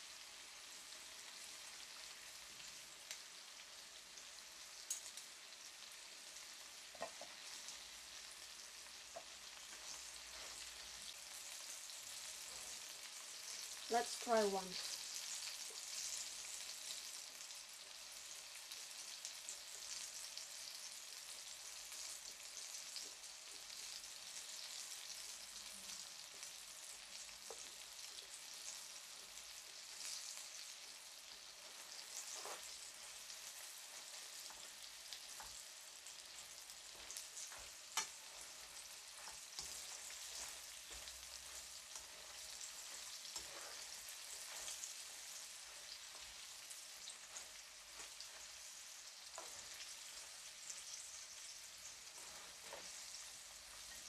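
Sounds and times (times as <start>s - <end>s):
meat sizzling in hot oil: 0.0s - 54.0s
metal tongs clicking on pan: 37.5s - 38.2s.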